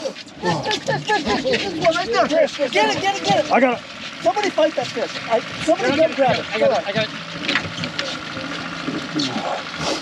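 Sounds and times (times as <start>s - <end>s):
outboard motor humming: 0.0s - 10.0s.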